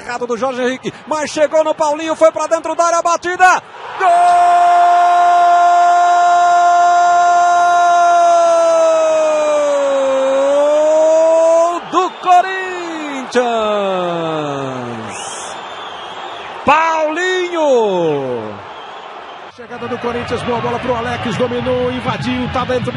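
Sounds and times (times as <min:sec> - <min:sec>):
commentator shouting goal: 0:06.8 - 0:15.2, 0:16.6 - 0:18.6.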